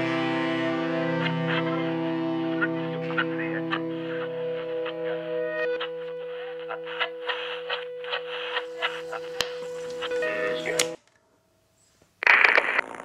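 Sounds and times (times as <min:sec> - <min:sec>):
distorted guitar chord ringing: 0:00.0 - 0:11.0.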